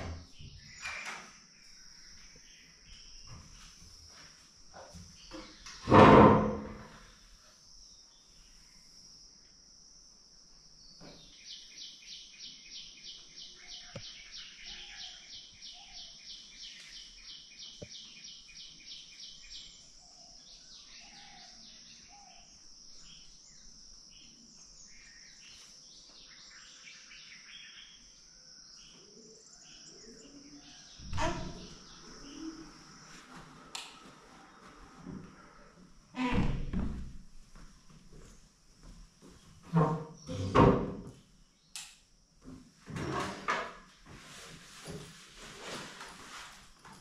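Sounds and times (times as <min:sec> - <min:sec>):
insects droning: 0:00.1 - 0:44.2.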